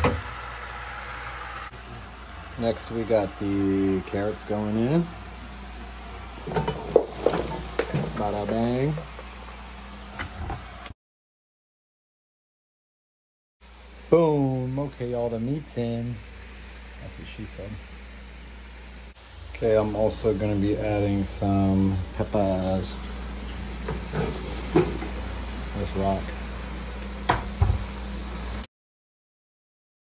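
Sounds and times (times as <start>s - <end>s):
vegetables sizzling in a pot: 0.0s - 10.9s, 13.6s - 28.7s
cutting board knocking on pot: 27.3s - 27.8s.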